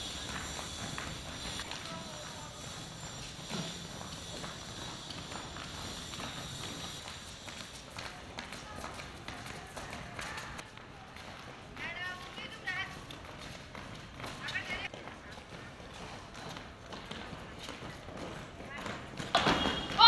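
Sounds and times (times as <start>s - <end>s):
footsteps on paving stones: 0.0s - 20.0s.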